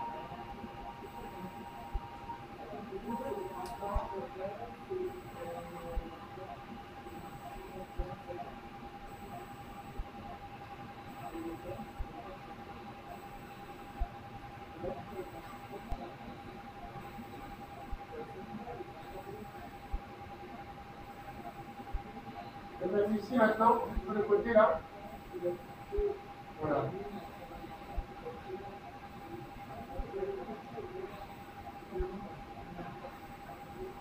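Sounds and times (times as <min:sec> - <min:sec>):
low background hum: 0:00.0 - 0:34.0.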